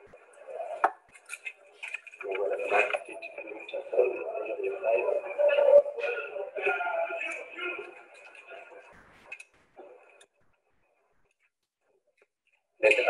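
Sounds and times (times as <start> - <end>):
indistinct background voices: 0.0 - 11.4.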